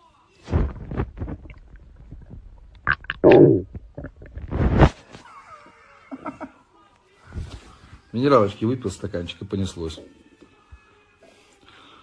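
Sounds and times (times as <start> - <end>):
stomach gurgling: 0.5 - 5.0.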